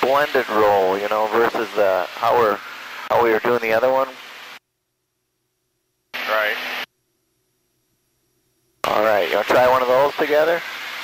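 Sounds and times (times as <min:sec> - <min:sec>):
faint intercom line hiss: 0:00.0 - 0:04.6, 0:06.1 - 0:06.9, 0:08.8 - 0:11.0.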